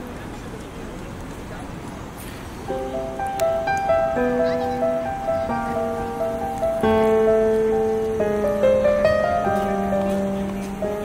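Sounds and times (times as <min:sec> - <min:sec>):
distant voices: 0:00.0 - 0:11.0.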